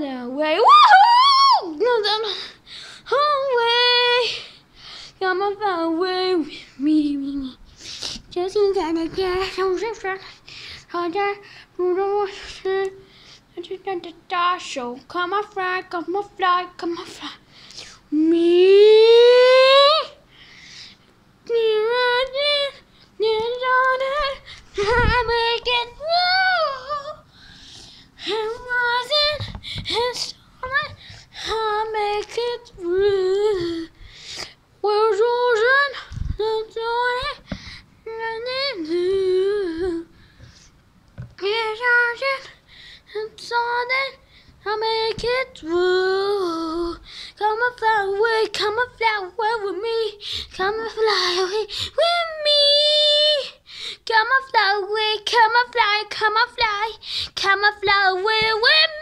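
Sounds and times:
child singing unaccompanied: 8.3s - 10.3s, 10.9s - 17.4s, 21.4s - 27.3s, 28.2s - 33.9s, 41.4s - 59.0s.

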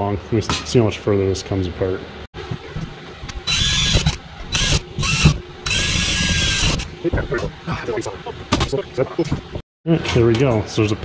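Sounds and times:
power drill drilling metal: 3.3s - 6.9s.

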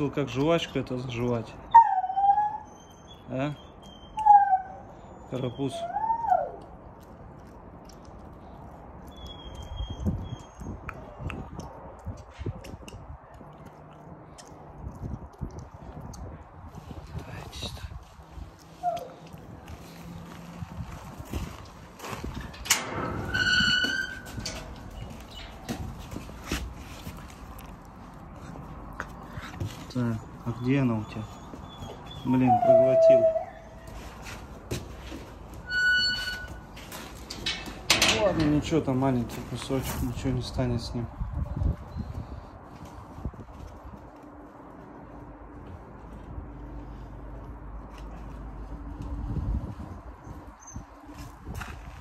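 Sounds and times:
puppy crying: 1.7s - 6.7s, 18.8s - 19.2s, 30.5s - 33.9s
puppy chewing: 6.3s - 17.2s, 24.8s - 32.3s.

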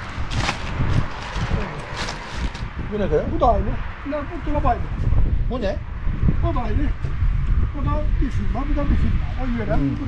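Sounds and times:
plastic packaging rustling: 0.0s - 2.7s.

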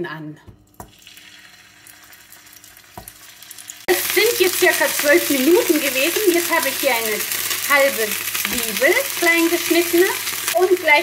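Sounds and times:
chicken sizzling in oil: 0.9s - 11.0s.

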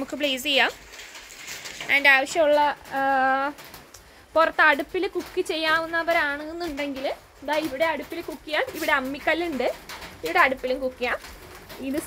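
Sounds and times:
person speaking: 4.3s - 12.0s.

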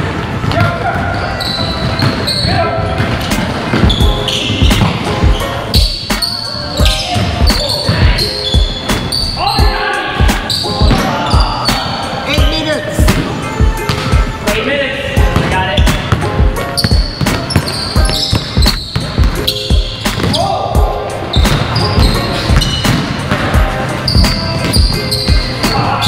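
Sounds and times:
sneakers squeaking: 0.0s - 14.5s, 15.2s - 26.0s
players calling out: 0.4s - 13.1s
basketball bouncing on wooden floor: 15.2s - 20.4s, 21.4s - 23.4s.

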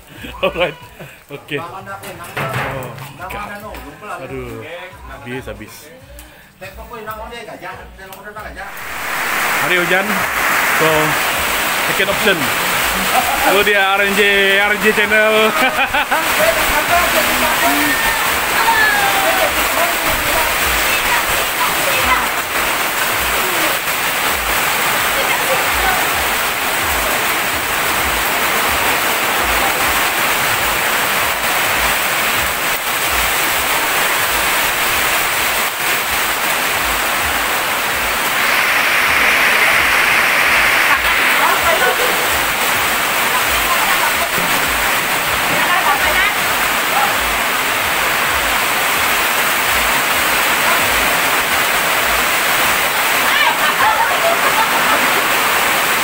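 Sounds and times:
heavy rain on tarpaulins: 0.0s - 5.5s, 8.2s - 56.0s.

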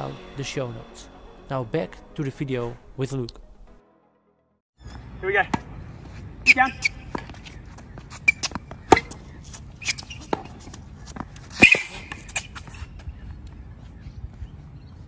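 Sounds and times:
tennis ball bounces: 6.8s - 13.0s.

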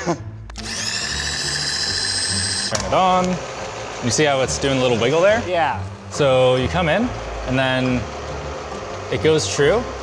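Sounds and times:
motor whining: 0.0s - 10.0s.

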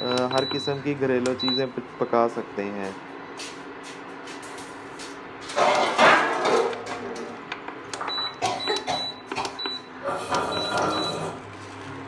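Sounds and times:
cooker low hum: 0.0s - 12.0s.

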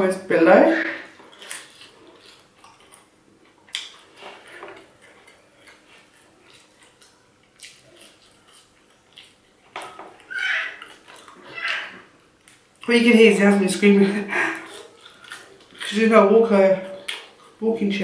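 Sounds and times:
baby screaming: 10.2s - 12.1s.

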